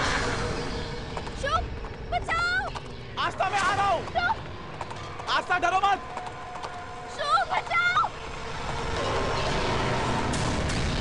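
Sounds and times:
noisy background: 0:00.0 - 0:11.0.

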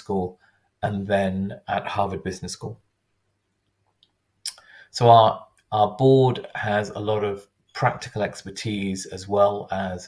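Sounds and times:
man speaking: 0:00.0 - 0:02.8, 0:04.5 - 0:10.0.

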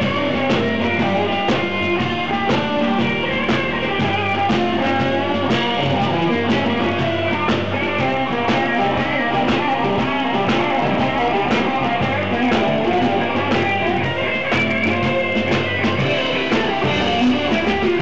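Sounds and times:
bass guitar: 0:00.0 - 0:18.0
drums playing steady beat: 0:00.0 - 0:18.0
electric guitar: 0:00.0 - 0:18.0
keyboard: 0:00.0 - 0:18.0.

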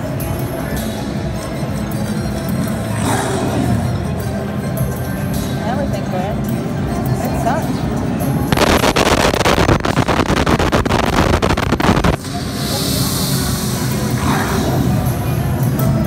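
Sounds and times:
background music: 0:00.0 - 0:16.0
crackling sandstorm rush: 0:08.6 - 0:12.2.

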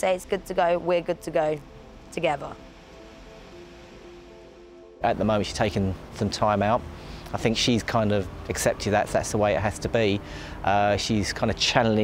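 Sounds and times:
sustained background music: 0:00.0 - 0:12.0.

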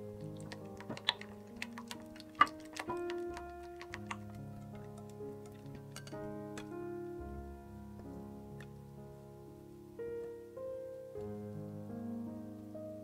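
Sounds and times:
background music sustained notes: 0:00.0 - 0:13.0.

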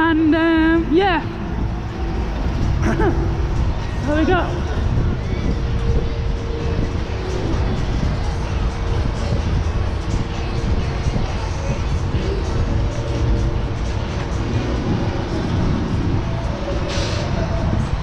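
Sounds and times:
fairground music: 0:00.0 - 0:18.0
wind buffeting microphone: 0:00.0 - 0:18.0.

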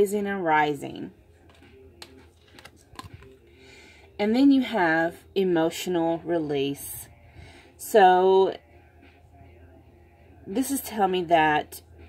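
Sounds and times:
cards clicking and tapping on table: 0:01.5 - 0:03.3.

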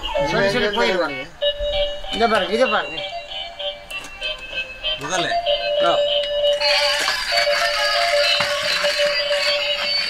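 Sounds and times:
toys playing electronic tunes: 0:00.0 - 0:10.0.

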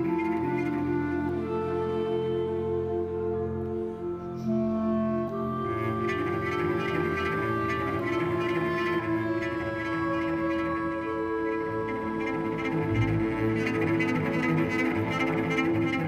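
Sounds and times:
orchestral strings with cello: 0:00.0 - 0:16.0.

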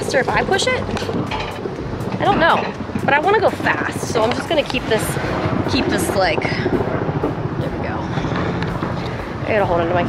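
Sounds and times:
cart rumbling on metal rail: 0:00.0 - 0:10.0
wind on microphone: 0:00.0 - 0:10.0.

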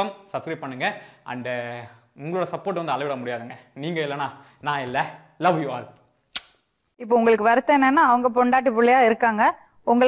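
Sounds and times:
man speaking: 0:00.0 - 0:06.0
sharp click: 0:06.3 - 0:06.6.

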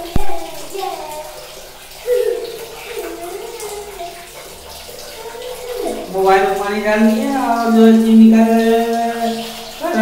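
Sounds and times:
water poured and splashing: 0:00.0 - 0:10.0.

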